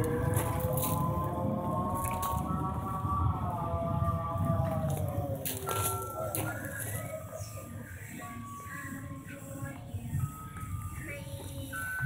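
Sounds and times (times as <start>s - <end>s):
low rumble: 0.0s - 8.0s
eerie gliding tones: 0.0s - 12.0s.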